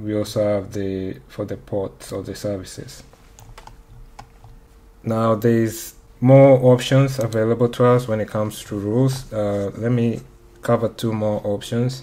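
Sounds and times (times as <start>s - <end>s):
faint steady hum: 0.0s - 12.0s
computer clicks: 3.4s - 4.6s.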